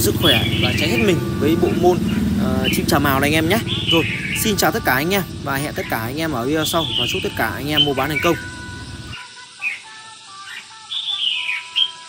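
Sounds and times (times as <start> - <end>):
bird chirping and whistling: 0.0 - 12.0.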